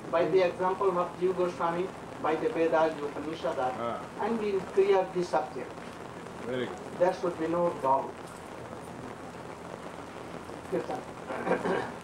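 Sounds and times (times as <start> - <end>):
steady hiss: 0.0 - 12.0
man talking: 3.7 - 4.4, 6.4 - 6.8.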